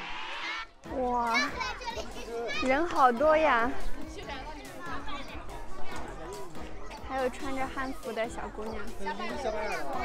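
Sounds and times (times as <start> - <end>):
background music: 0.0 - 10.0
crowd noise: 0.0 - 10.0.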